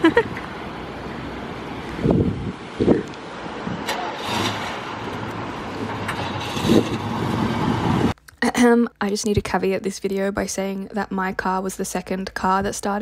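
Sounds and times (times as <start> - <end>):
car engine starting and idling: 3.1 - 8.2.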